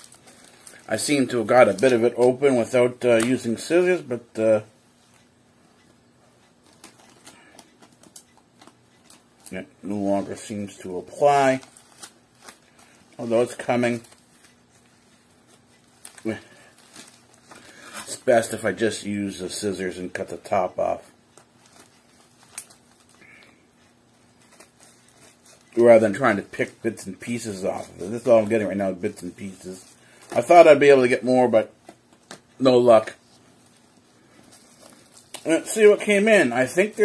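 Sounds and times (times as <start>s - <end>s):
plastic package handling: 0.0s - 2.4s, 10.2s - 18.2s, 21.4s - 23.2s, 24.2s - 31.2s, 31.8s - 37.0s.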